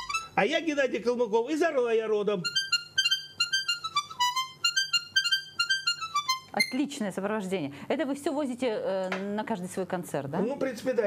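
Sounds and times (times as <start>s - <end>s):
button accordion quick tune: 0.0s - 0.4s, 2.4s - 6.9s.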